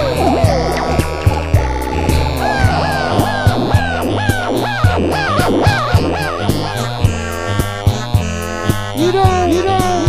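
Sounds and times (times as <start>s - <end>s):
electronic music with drums and bass: 0.4s - 9.5s
swooping high tone: 2.2s - 7.0s.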